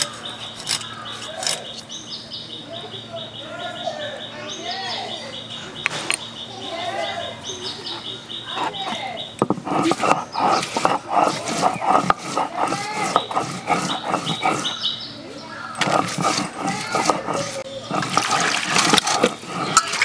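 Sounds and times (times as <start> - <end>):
stone grinding on stone: 8.5 - 15.0, 15.8 - 20.0
water splashing in a bowl: 17.9 - 20.0.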